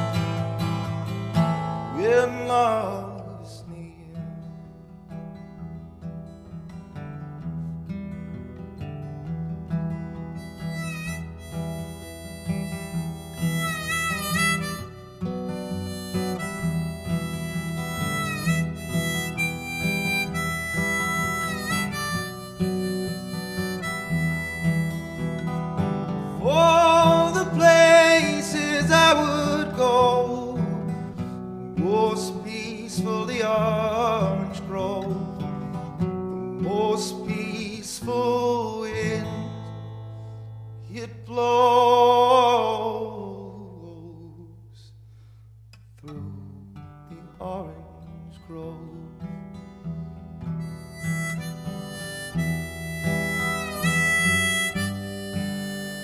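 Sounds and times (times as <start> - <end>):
harmonica melody with bending notes: 0.0 - 3.4, 9.9 - 43.2, 48.8 - 56.0
strummed acoustic guitar: 0.0 - 56.0.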